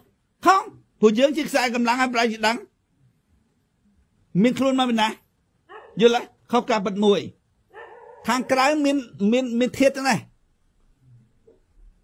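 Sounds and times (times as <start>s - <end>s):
man talking: 0.4s - 2.8s, 4.3s - 5.3s, 6.0s - 7.4s, 8.2s - 10.4s.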